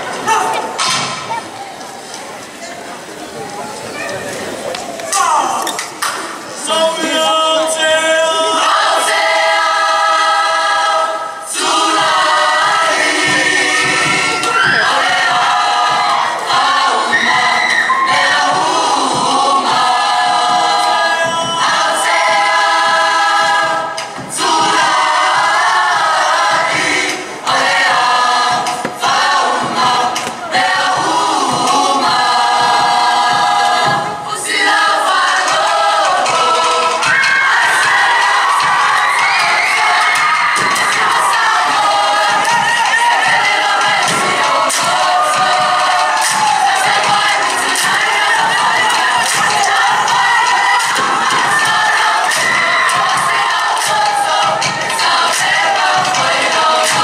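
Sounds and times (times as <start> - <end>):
group singing in harmony: 0.0 - 1.4, 5.7 - 57.0
audience noise: 0.0 - 57.0.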